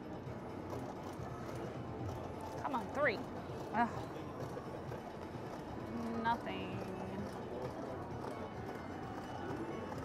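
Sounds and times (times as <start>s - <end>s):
casino background din: 0.0s - 10.0s
woman speaking: 5.9s - 7.2s.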